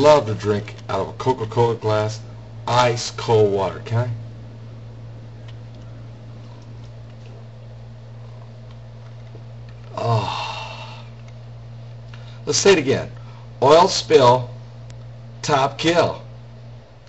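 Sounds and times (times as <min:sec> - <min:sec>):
low electrical hum: 0:00.0 - 0:17.0
man drinking ice water: 0:05.4 - 0:12.4
breathy exhale: 0:09.9 - 0:11.2, 0:12.1 - 0:12.5.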